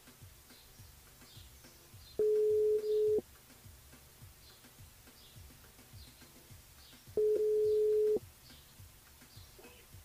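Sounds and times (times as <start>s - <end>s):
telephone ringback tone: 2.2s - 3.2s, 7.2s - 8.2s.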